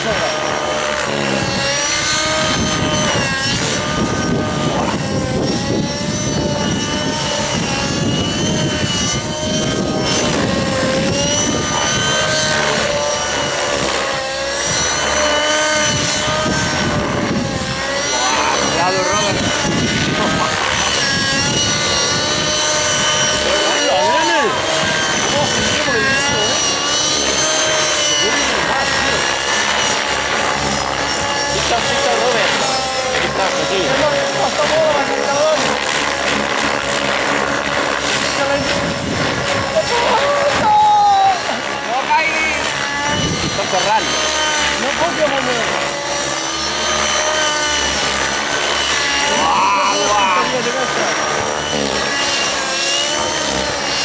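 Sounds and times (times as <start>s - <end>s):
model helicopter engine whine: 0.0s - 54.0s
rotor wash rushing: 0.0s - 54.0s.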